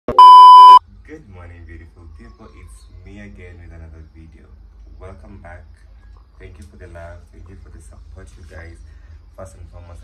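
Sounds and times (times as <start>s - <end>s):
high electronic beep: 0.1s - 0.8s
faint talk: 1.1s - 5.6s.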